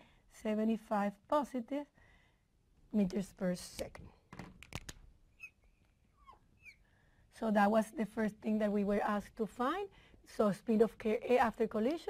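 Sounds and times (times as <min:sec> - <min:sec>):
marker squeaking on glass: 0:05.3 - 0:06.8.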